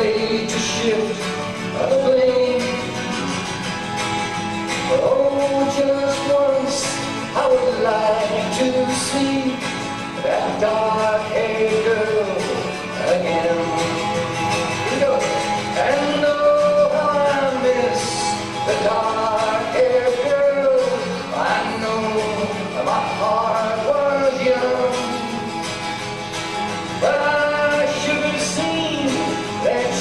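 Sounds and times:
acoustic guitar: 0.0 - 30.0
man singing a folk song: 0.0 - 30.0.

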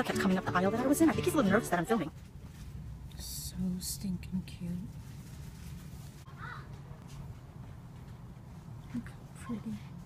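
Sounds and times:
shop background hum: 0.0 - 10.0.

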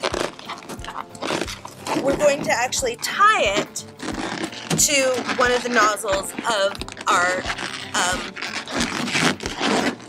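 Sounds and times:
balloons squeaking and rubbing: 0.0 - 10.0.

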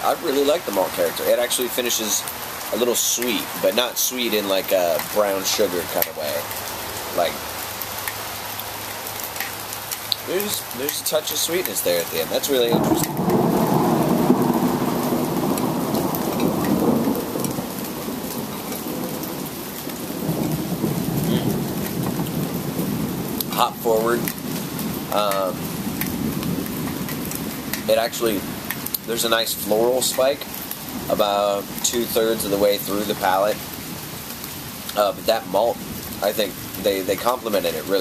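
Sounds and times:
raindrop hits: 0.0 - 38.0
steady rain hiss: 0.0 - 38.0.

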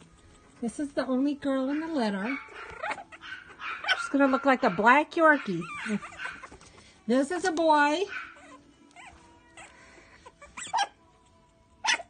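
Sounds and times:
puppies whimpering and yipping: 0.0 - 12.0.

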